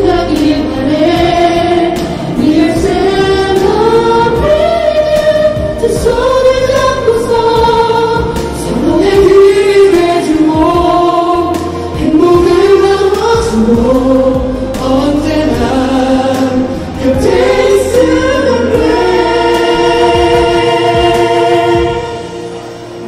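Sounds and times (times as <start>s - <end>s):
women singing: 0.0s - 22.6s
instrumental accompaniment: 0.0s - 23.0s.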